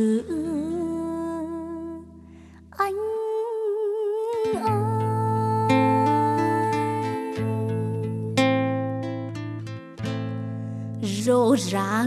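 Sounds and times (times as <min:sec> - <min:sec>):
plucked-string accompaniment: 0:04.4 - 0:12.0.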